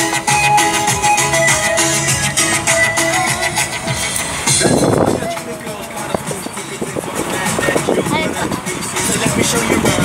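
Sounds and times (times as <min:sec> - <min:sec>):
music playing: 0:00.0 - 0:10.0
road and engine noise in car: 0:00.0 - 0:10.0.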